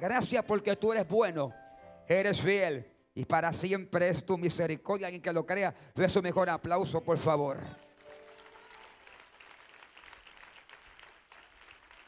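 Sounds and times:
congregation applauding: 0:07.5 - 0:12.0.

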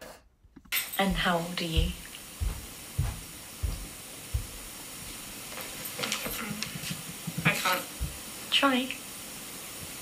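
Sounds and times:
recording hiss: 0:00.0 - 0:10.0
soft low thumps: 0:01.1 - 0:05.0.

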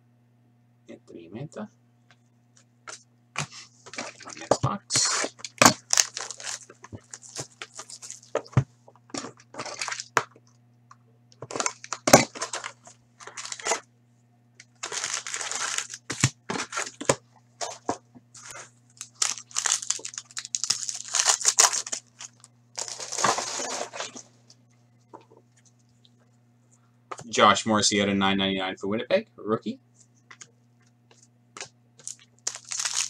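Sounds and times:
faint steady hum: 0:00.0 - 0:33.0
foil packs ripping and crinkling: 0:03.9 - 0:08.5, 0:09.2 - 0:10.2, 0:11.4 - 0:13.8, 0:14.7 - 0:17.8, 0:18.4 - 0:24.3, 0:32.0 - 0:33.0
cardboard box tearing: 0:22.8 - 0:24.2.

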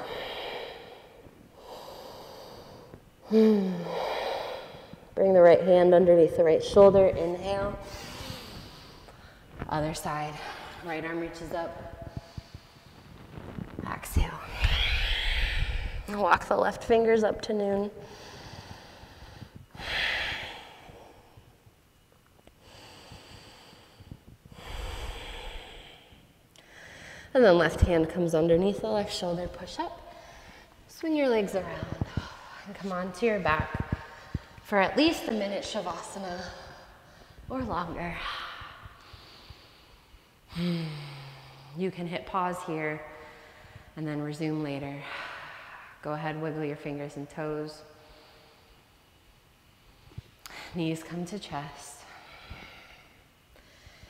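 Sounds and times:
woman breathing slowly: 0:00.0 - 0:05.2, 0:07.5 - 0:13.6, 0:14.4 - 0:16.2, 0:17.8 - 0:21.7, 0:22.4 - 0:27.4, 0:29.7 - 0:31.0, 0:31.6 - 0:41.8, 0:43.1 - 0:44.0, 0:44.9 - 0:46.1, 0:47.8 - 0:50.8, 0:51.8 - 0:54.0.

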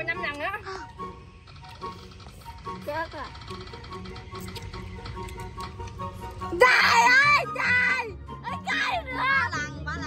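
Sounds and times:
app wheel ticking: 0:00.0 - 0:06.5
light background music: 0:00.0 - 0:10.0.

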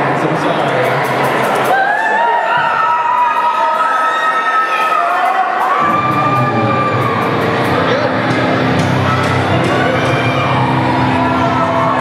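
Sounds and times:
droning rumble of amplified instruments: 0:05.8 - 0:12.0.

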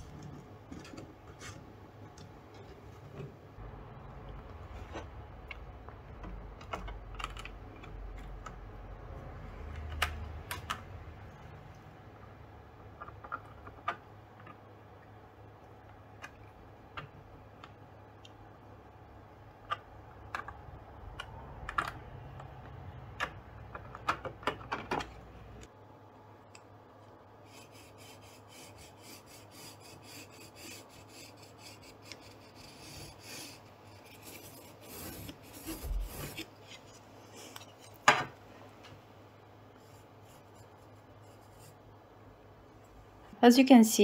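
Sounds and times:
scratchy pencil strokes: 0:27.4 - 0:37.9, 0:39.7 - 0:41.8.

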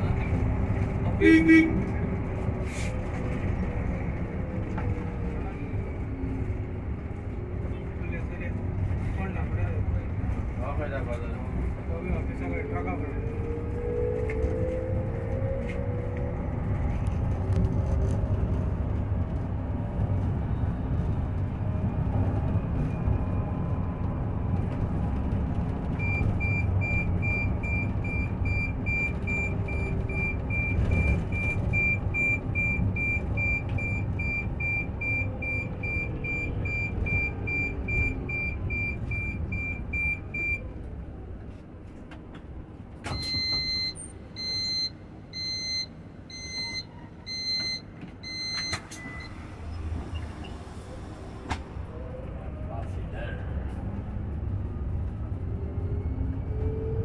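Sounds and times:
bus tyre and road rumble: 0:00.0 - 0:57.0.

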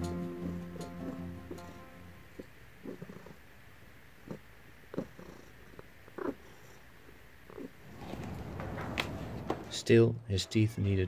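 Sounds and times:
cat purring: 0:00.1 - 0:09.5.

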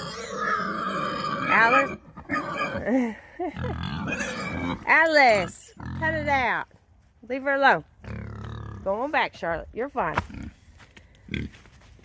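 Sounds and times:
pig squealing: 0:00.0 - 0:02.8, 0:03.6 - 0:04.9
pig grunting: 0:00.0 - 0:06.3, 0:08.0 - 0:08.9
person laughing: 0:02.8 - 0:04.0.

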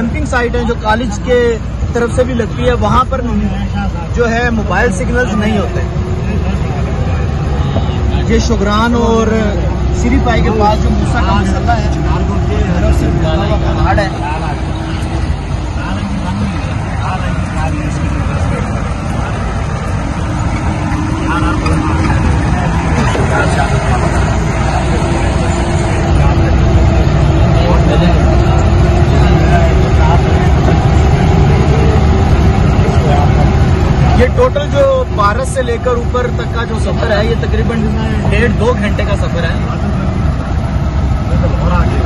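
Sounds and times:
jeep engine running: 0:00.0 - 0:42.0.

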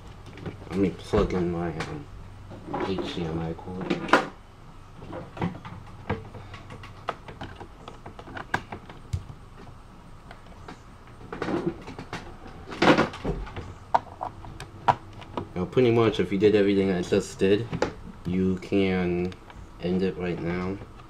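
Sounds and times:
laptop and cables clicking: 0:05.1 - 0:15.5.

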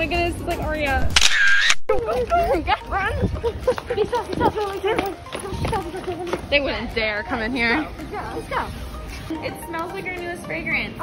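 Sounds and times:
girls talking: 0:01.9 - 0:11.0.

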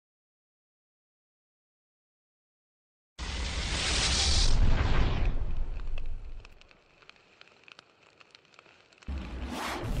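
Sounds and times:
faint fire crackles: 0:03.2 - 0:10.0
fire burst with deep rumble: 0:03.2 - 0:10.0.

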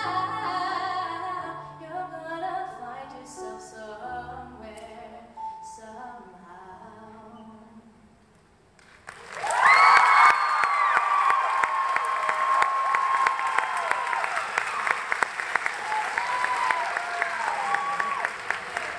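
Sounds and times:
audience applause: 0:08.9 - 0:18.9
whoops and cheers: 0:09.3 - 0:15.1, 0:15.7 - 0:18.9.

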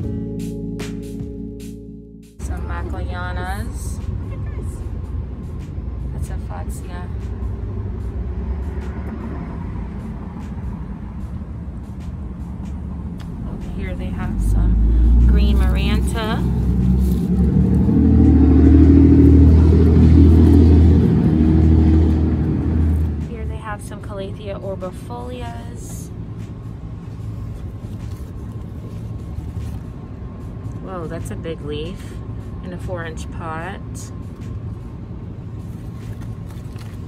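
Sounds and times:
vehicle engine rumbling: 0:00.0 - 0:37.0.

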